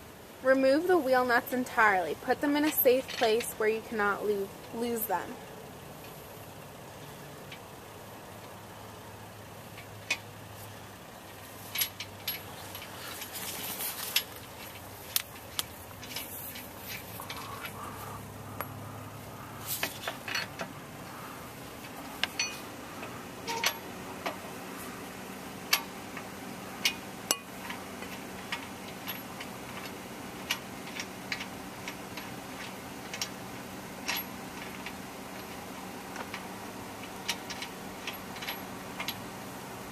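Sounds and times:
metallic clicks of wheel nuts: 0:05.9 - 0:39.8.

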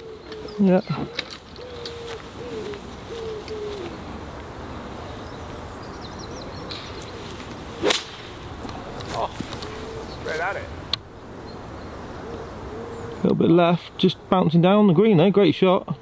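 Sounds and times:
bird calling: 0:00.0 - 0:13.6
golf club striking ball: 0:07.8 - 0:08.8.

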